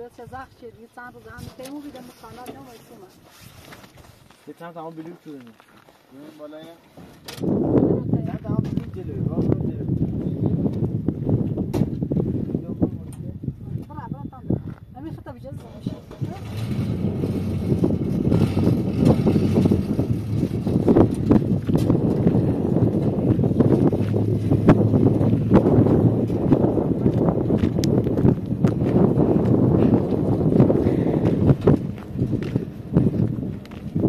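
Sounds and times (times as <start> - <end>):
footsteps on dirt: 1.1 - 7.2, 17.0 - 34.0
wind on microphone: 7.2 - 34.0
pickup truck engine running: 15.6 - 34.0.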